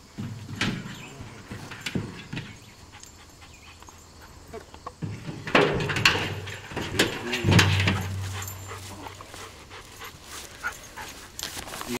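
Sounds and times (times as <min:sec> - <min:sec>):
dog panting: 0:02.8 - 0:04.4, 0:08.1 - 0:11.4.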